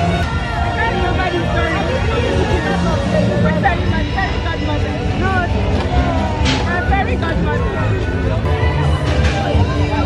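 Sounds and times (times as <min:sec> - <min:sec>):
crowd voices: 0:00.0 - 0:10.0
low hum of parade vehicles: 0:00.0 - 0:10.0.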